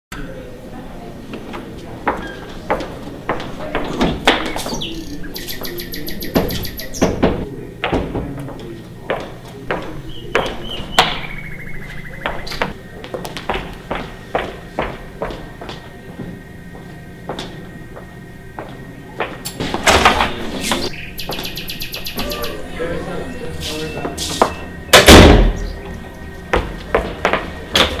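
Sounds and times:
footsteps on hard floor: 0:02.1 - 0:04.9, 0:06.4 - 0:11.2, 0:11.8 - 0:19.9, 0:20.7 - 0:22.4, 0:25.9 - 0:28.0
bird chirping and trilling: 0:04.4 - 0:07.4, 0:10.0 - 0:12.8, 0:20.3 - 0:25.9
sharp hits: 0:24.7 - 0:25.8.

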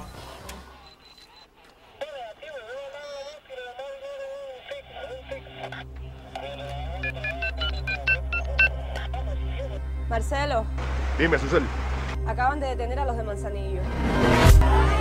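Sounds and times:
touch-tone keypad beeps: 0:07.0 - 0:08.8.

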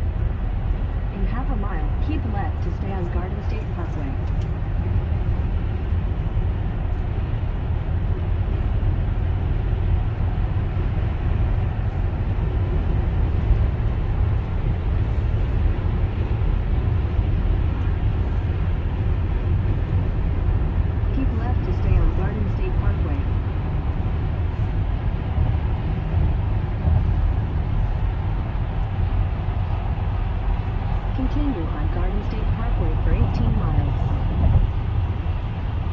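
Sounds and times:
car cabin road noise: 0:00.0 - 0:35.9.

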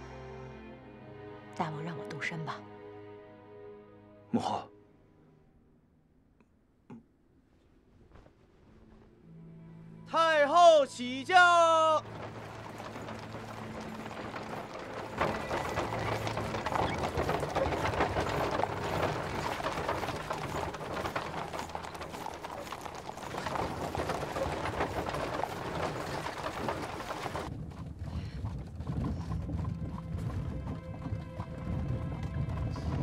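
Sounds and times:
background music: 0:00.0 - 0:06.1, 0:09.1 - 0:27.5, 0:29.6 - 0:33.0
horses hooves clip-clopping: 0:11.3 - 0:33.0.

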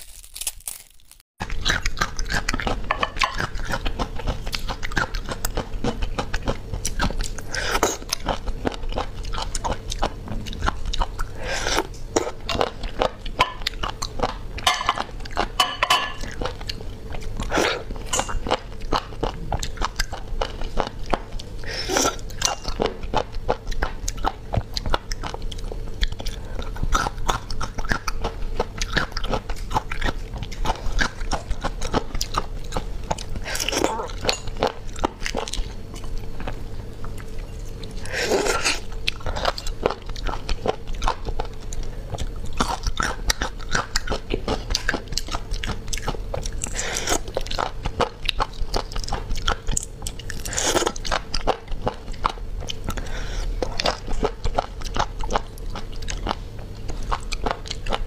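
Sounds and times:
chewing with wet clicks: 0:01.4 - 0:11.4, 0:18.2 - 0:21.6, 0:22.2 - 0:38.0, 0:38.9 - 0:58.0.

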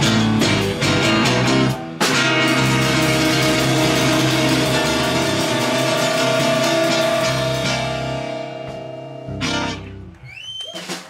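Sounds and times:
electric guitars and bass chord: 0:00.0 - 0:10.1
rising whistle: 0:10.2 - 0:11.0.

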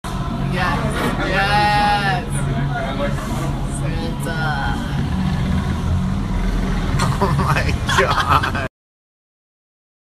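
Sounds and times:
motorcycle engine rumbling: 0:04.4 - 0:08.3.

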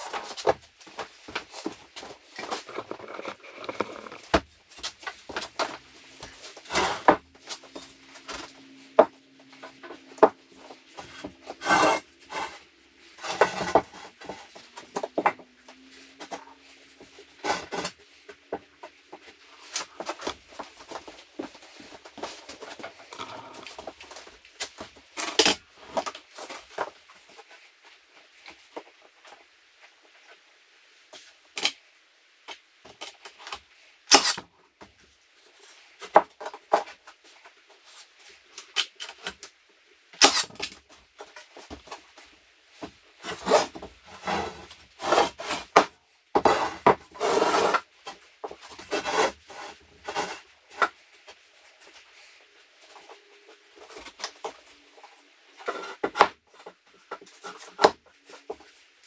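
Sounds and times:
wood scraping on wood: 0:00.0 - 0:27.5, 0:42.8 - 0:58.7.

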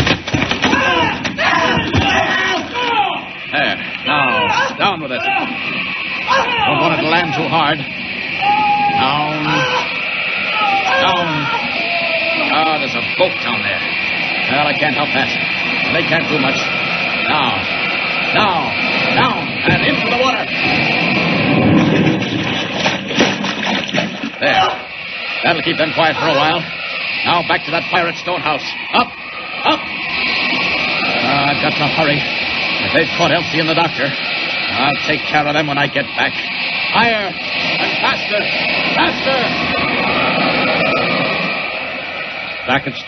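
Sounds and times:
aircraft engine drone: 0:00.0 - 0:43.0
rushing whoosh of wind: 0:02.6 - 0:43.0.

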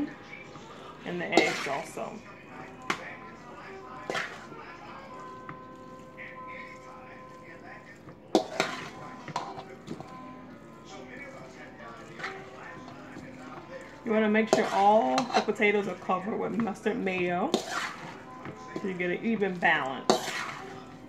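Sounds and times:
faint background music: 0:00.0 - 0:21.0
spoon scraping metal bowl: 0:00.0 - 0:21.0.

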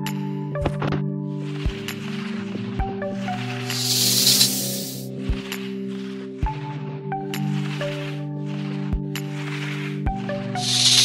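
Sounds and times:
background music low notes: 0:00.0 - 0:11.0
snake hiss sound effect: 0:03.6 - 0:05.1, 0:10.6 - 0:11.0.

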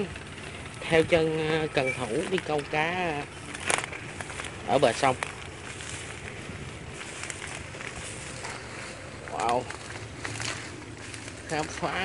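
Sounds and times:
faint rustles: 0:00.0 - 0:12.0
outdoor background noise: 0:00.0 - 0:12.0.

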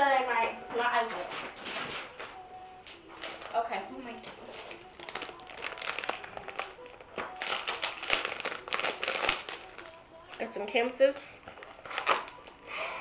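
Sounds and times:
plastic wrapping crinkling: 0:01.2 - 0:12.6.

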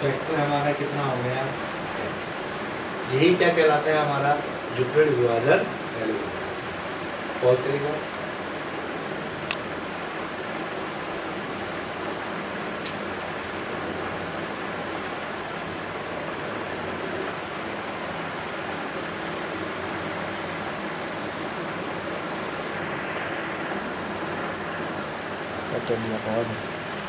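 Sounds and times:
steady background hiss: 0:00.0 - 0:27.0.

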